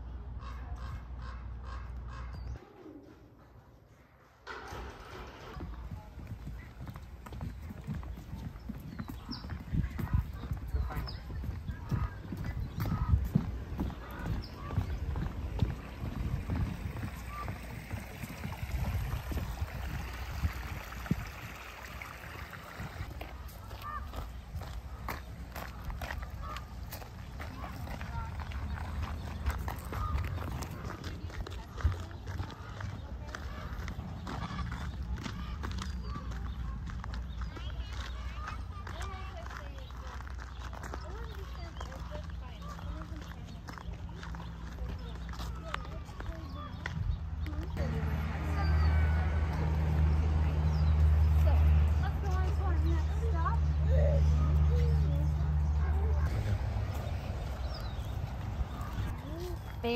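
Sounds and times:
footsteps on wooden boardwalk: 5.6 - 19.9, 23.0 - 47.8.

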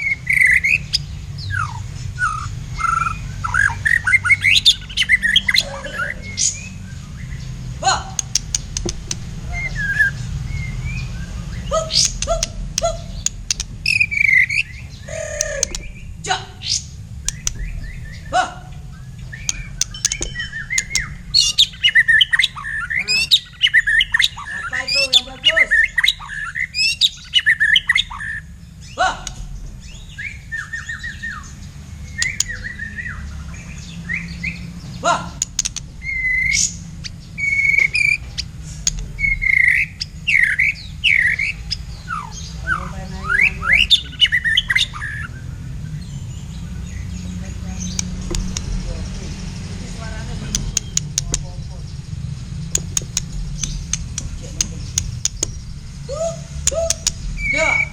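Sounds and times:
steady low rumble: 0.0 - 57.9
bird singing whistled phrases: 9.4 - 29.0, 32.1 - 33.3, 35.6 - 36.8, 37.4 - 45.4, 54.9 - 57.9.

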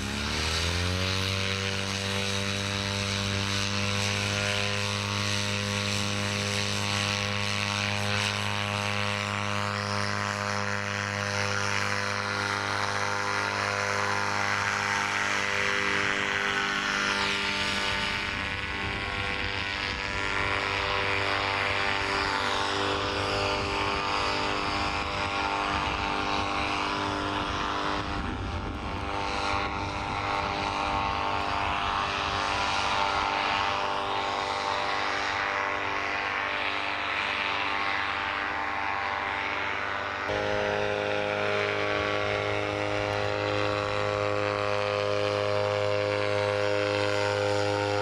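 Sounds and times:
paramotor engine drone: 0.0 - 48.0.

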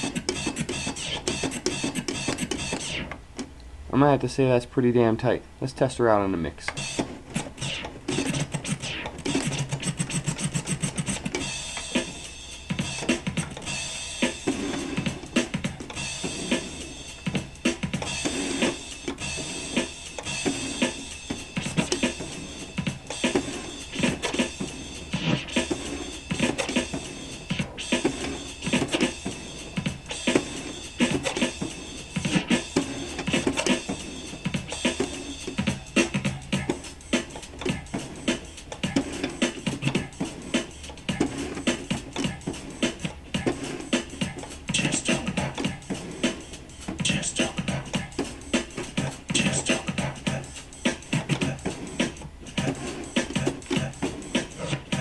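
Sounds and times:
record scratching: 0.0 - 3.2, 6.2 - 55.0
drum-heavy dance track: 6.8 - 55.0.

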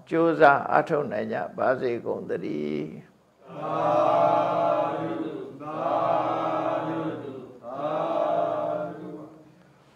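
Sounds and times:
chanting on a steady pitch: 3.4 - 9.6.

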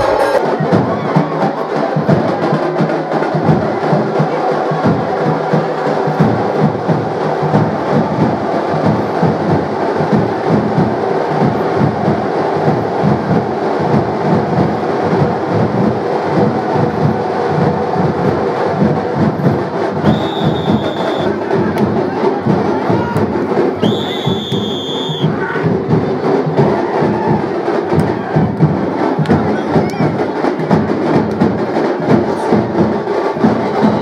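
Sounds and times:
drum-led procession music: 0.0 - 34.0.

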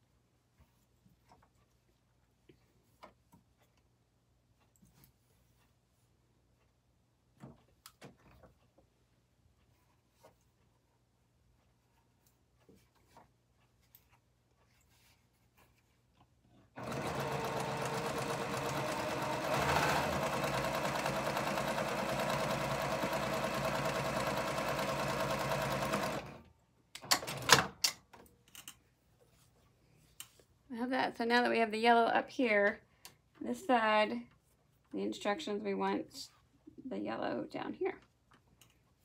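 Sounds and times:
sewing machine running: 16.8 - 26.5.

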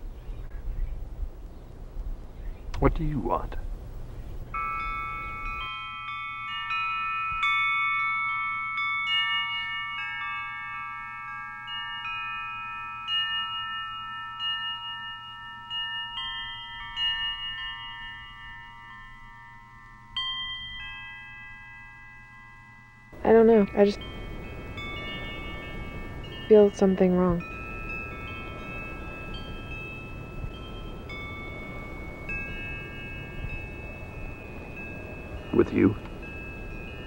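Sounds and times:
metal chimes ringing: 4.4 - 37.0.

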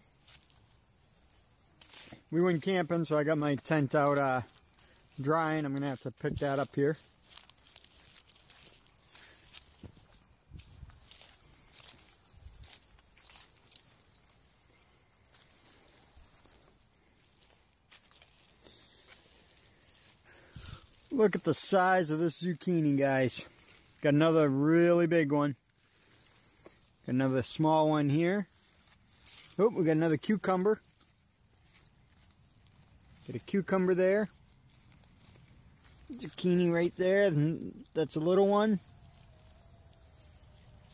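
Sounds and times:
faint outdoor background hiss: 0.0 - 40.9
footsteps through grass: 0.0 - 40.9
high-pitched insect drone: 6.9 - 21.1.

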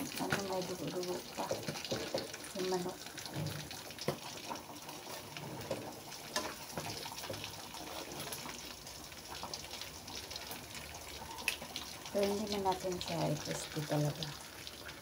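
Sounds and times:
chicken sizzling in a wok: 0.0 - 15.0
tongs scraping and clicking on pan: 1.4 - 2.5, 3.6 - 8.6.

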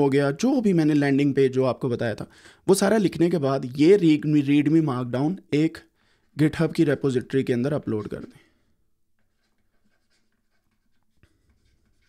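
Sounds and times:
stylus scratching on tablet screen: 9.2 - 12.0.

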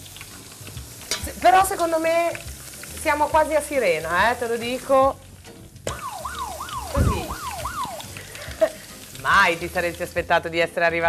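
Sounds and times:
electronic warning siren wail: 5.9 - 8.2
low thump: 6.9 - 8.0.

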